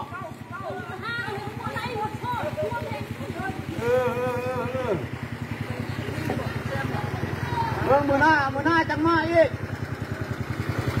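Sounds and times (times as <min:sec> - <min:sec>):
boat engine puttering: 0:00.0 - 0:11.0.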